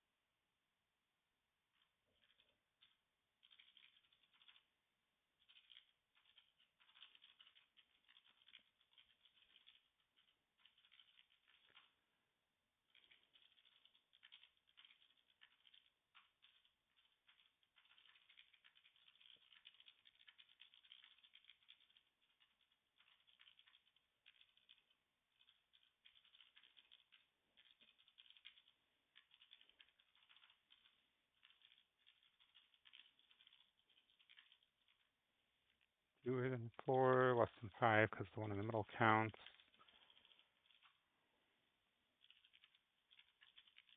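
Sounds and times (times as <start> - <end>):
faint keyboard typing: 1.7 - 12.1, 12.8 - 43.9.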